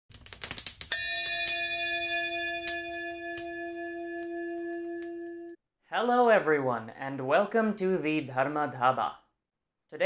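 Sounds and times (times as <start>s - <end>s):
bell ringing: 0.9s - 5.6s
small metallic strikes: 0.9s - 5.6s.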